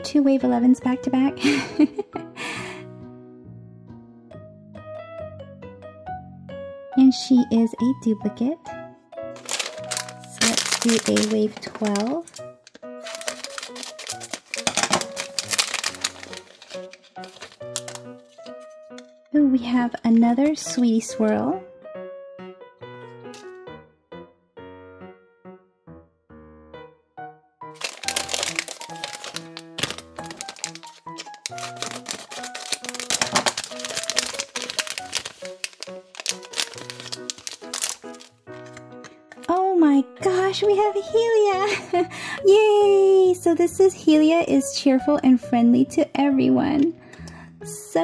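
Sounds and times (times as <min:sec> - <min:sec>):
light background music: 0:00.0 - 0:23.9, 0:27.7 - 0:48.0
plastic bag crinkling: 0:09.4 - 0:18.6, 0:27.8 - 0:38.8
scissors cutting plastic: 0:09.4 - 0:19.0, 0:27.8 - 0:39.5.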